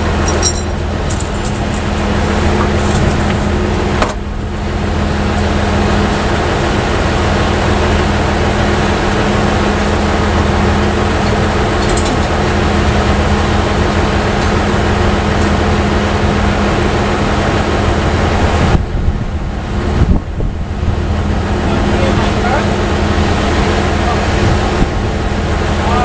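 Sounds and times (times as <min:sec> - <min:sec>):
truck engine running: 0:00.0 - 0:26.0.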